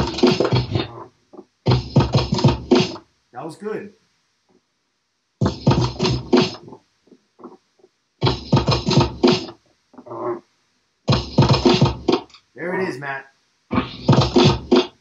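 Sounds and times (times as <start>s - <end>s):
drum break from records: 0.0s - 3.1s, 5.4s - 10.4s, 11.1s - 12.4s, 13.7s - 15.0s.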